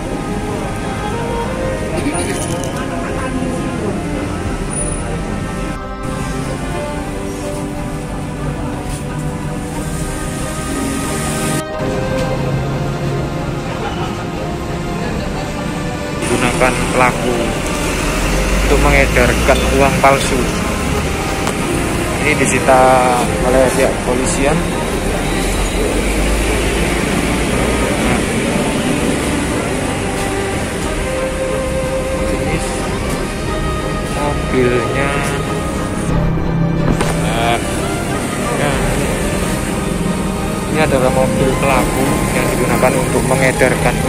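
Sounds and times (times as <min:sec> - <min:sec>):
background music: 0:00.0 - 0:44.0
steady street hiss: 0:00.0 - 0:44.0
people talking: 0:15.0 - 0:17.6, 0:18.7 - 0:20.6, 0:22.2 - 0:28.6, 0:32.3 - 0:33.2, 0:34.1 - 0:35.5, 0:37.1 - 0:37.8, 0:38.4 - 0:39.2, 0:40.7 - 0:44.0
low rumble: 0:35.8 - 0:38.2.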